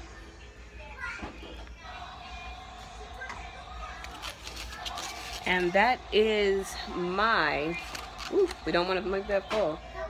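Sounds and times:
faint children's voices: 0.0 - 5.6
music playing: 0.0 - 10.0.

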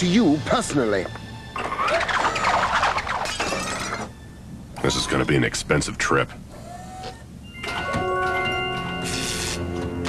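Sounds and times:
background music: 0.0 - 5.5, 7.4 - 10.0
cartoon warbling squeal: 1.6 - 4.1, 4.8 - 5.5.

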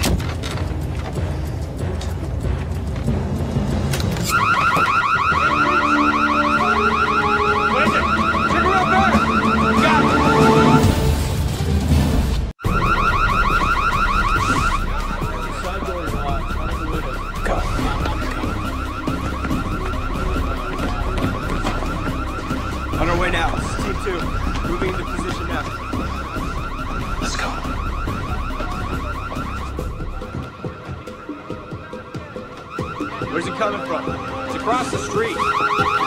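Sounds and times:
car alarm electronic warble: 4.2 - 11.1, 12.6 - 36.0.

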